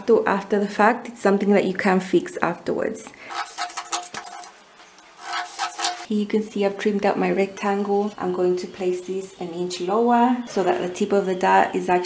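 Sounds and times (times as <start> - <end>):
faint background music: 6.1 - 12.0.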